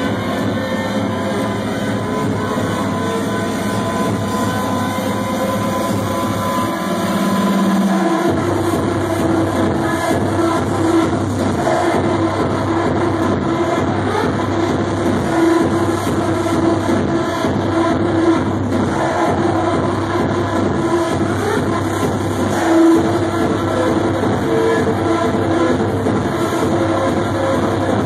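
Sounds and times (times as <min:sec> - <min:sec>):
loud electronic dance music: 0:00.0 - 0:28.0.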